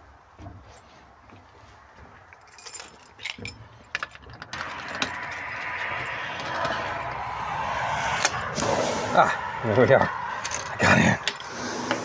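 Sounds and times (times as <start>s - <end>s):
steady rushing noise: 4.5s - 12.0s.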